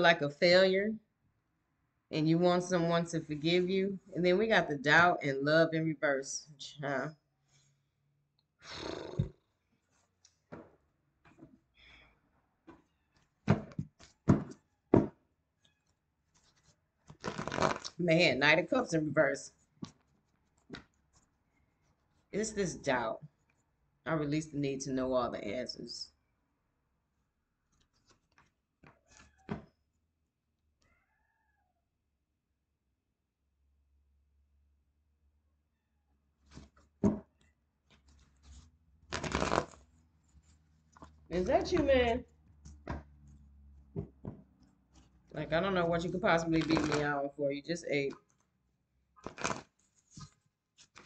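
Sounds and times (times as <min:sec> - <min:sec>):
cards being shuffled: 0:16.3 - 0:18.0, 0:37.9 - 0:43.1, 0:46.5 - 0:47.0, 0:49.2 - 0:51.0
cards riffle shuffling: 0:49.2 - 0:51.0
cards rustling: 0:49.2 - 0:51.0.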